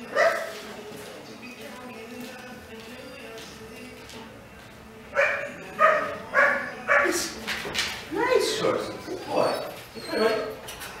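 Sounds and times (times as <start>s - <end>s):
dog whining and yipping: 8.4s - 10.8s.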